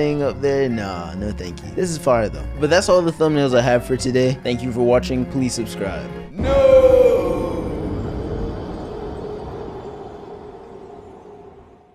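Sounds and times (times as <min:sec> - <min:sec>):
person shouting with echo: 0:06.4 - 0:08.7
dark rumbling decay: 0:06.4 - 0:11.9.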